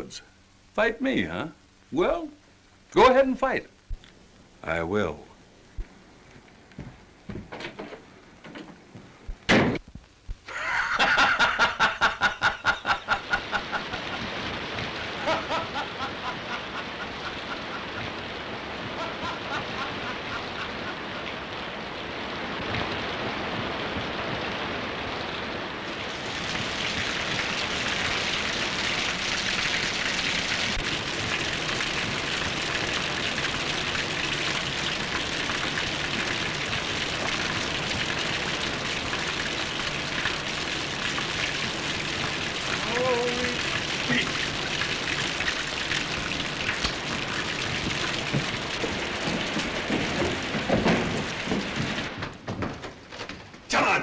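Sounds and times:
heavy rain: 0:00.0 - 0:54.0
water spilling into barrel: 0:10.5 - 0:53.5.

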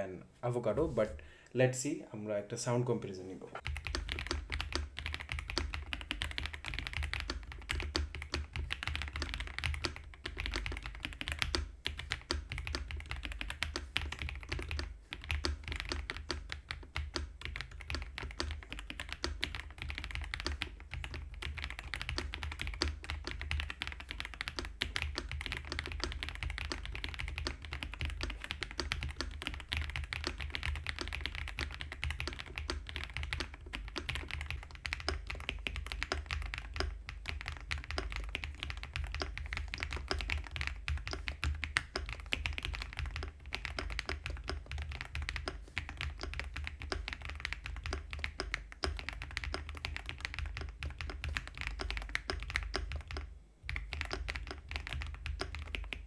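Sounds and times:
fast mechanical keyboard typing: 0:03.6 - 0:56.0.

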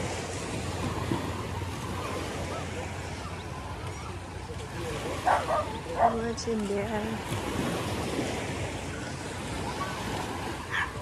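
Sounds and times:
small surf on sand beach: 0:00.0 - 0:11.0.

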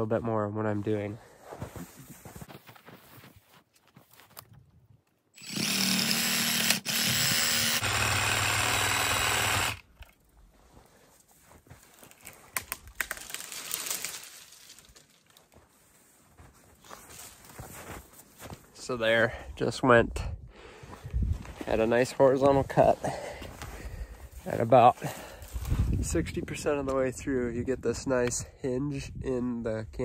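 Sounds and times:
reciprocating saw cutting wood: 0:05.4 - 0:09.9
crackling and rustling: 0:10.8 - 0:18.6.

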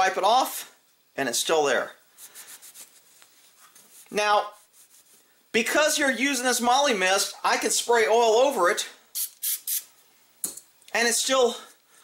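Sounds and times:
cloth rubbing on metal: 0:02.1 - 0:05.4.

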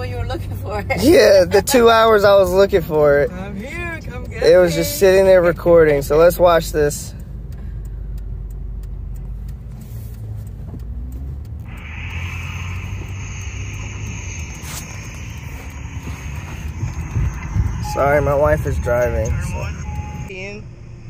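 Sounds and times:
car road and engine noise: 0:00.0 - 0:21.0
steady high hiss: 0:11.6 - 0:20.3
thin high tone: 0:11.7 - 0:20.3.

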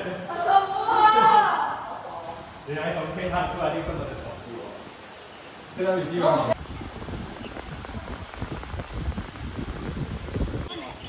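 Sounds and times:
faint hiss: 0:00.0 - 0:11.0
wind buffeting microphone: 0:02.4 - 0:04.8, 0:06.4 - 0:11.0.

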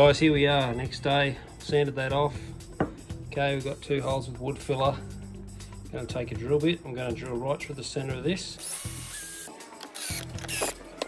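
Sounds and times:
background music: 0:00.0 - 0:11.0
cordless drill boring into wood: 0:08.6 - 0:10.8.

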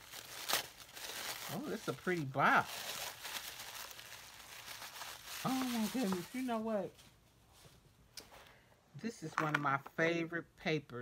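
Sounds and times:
tissue paper rustling and crinkling: 0:00.0 - 0:07.8.

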